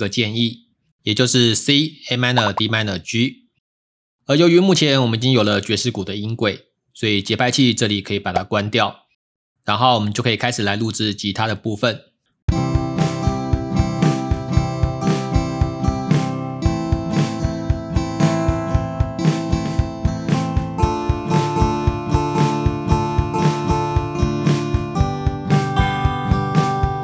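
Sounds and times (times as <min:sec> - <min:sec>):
acoustic guitar chords: 0:12.6 - 0:27.0
drum kit beat: 0:16.7 - 0:27.0.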